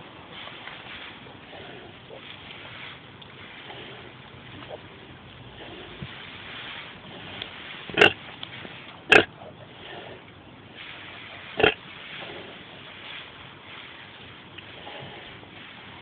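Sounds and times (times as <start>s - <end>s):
pig calls: 7.9s - 8.2s, 9.1s - 10.2s, 11.6s - 12.6s.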